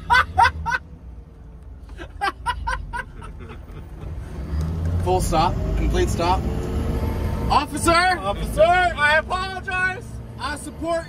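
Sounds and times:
people laughing: 0.0 - 0.8, 1.9 - 4.2
car engine and road rumble: 0.0 - 11.0.

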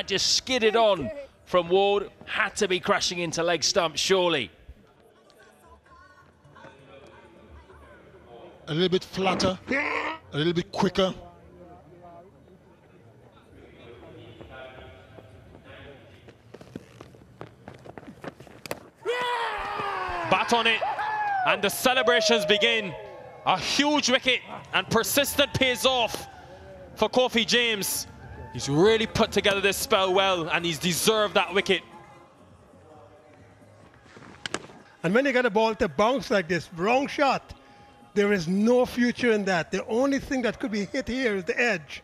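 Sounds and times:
faint background music: 0.0 - 18.2, 19.0 - 42.0
running footsteps: 14.4 - 20.4
ball hitting stumps crack: 34.3 - 34.8.

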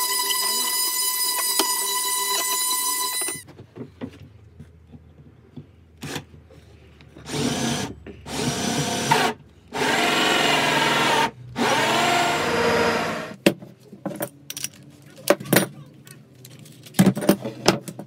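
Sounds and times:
drill cutting into wood: 0.0 - 3.4, 7.3 - 13.4.

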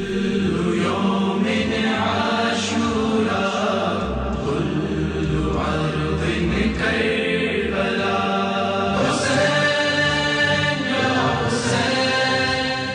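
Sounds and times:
chanted vocal music: 0.0 - 12.9.

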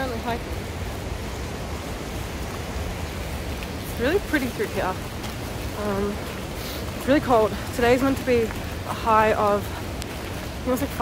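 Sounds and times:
stream rushing over rapids: 0.0 - 11.0.

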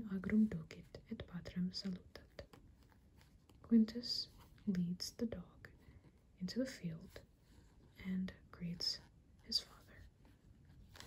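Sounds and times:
person whispering: 3.8 - 5.8, 6.4 - 7.3, 7.9 - 10.1.

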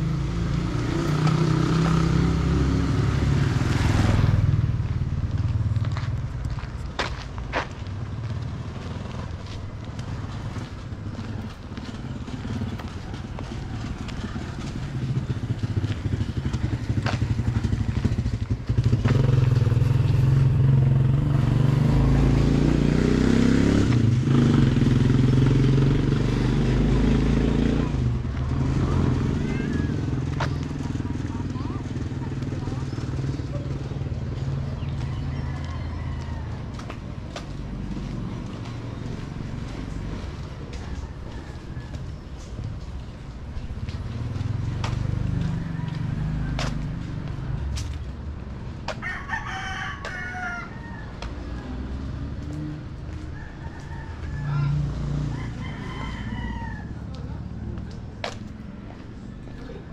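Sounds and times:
motorcycle engine passing: 0.0 - 6.4, 7.8 - 59.9
vehicle engine: 0.0 - 59.9
people talking: 29.3 - 34.0.

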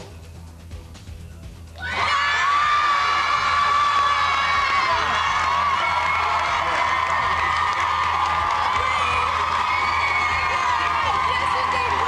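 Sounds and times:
children cheering and screaming: 1.8 - 12.0.

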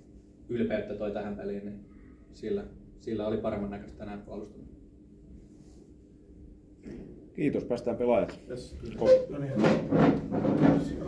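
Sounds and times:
men talking off-mic: 7.4 - 10.0
knock or bump: 9.5 - 11.0.

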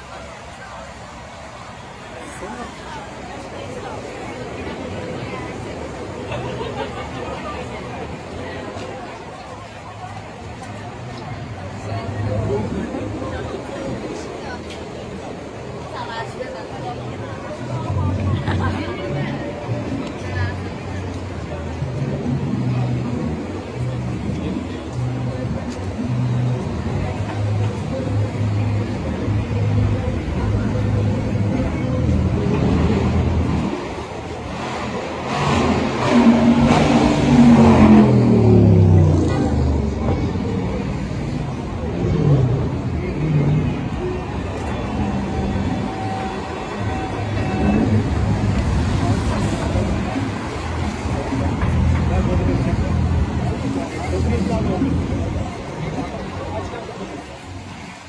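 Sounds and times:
city street traffic: 0.0 - 58.0
people talking: 0.0 - 58.0.

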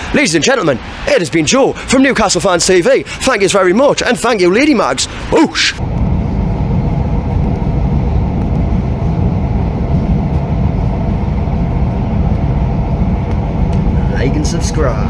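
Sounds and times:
train rumbling on track: 0.0 - 15.0.

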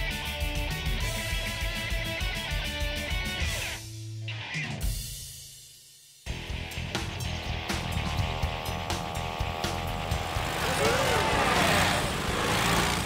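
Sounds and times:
background music: 6.3 - 13.0
steady even-pitched buzz: 7.2 - 13.0
cartoon scooter engine puttering: 7.8 - 13.0.

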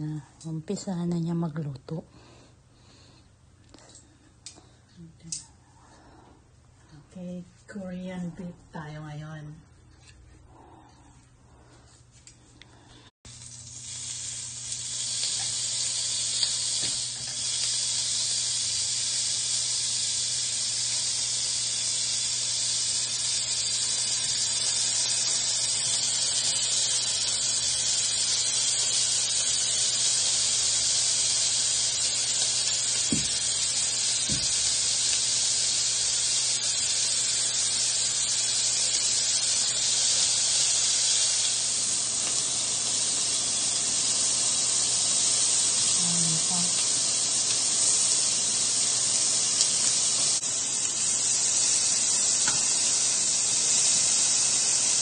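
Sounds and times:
meat sizzling on a grill: 13.3 - 55.0.

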